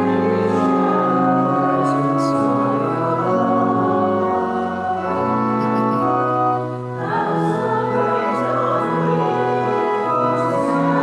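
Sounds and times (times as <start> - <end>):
organ sustained chords: 0.0 - 11.0
voices singing: 0.7 - 11.0.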